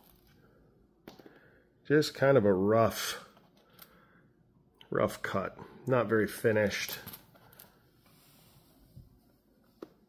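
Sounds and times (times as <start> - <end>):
man speaking: 1.8 - 3.4, 4.8 - 7.2.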